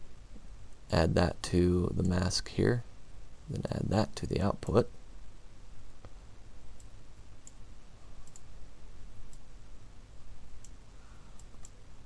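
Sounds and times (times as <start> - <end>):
computer mouse clicking: 8.2 - 8.5, 11.4 - 11.8.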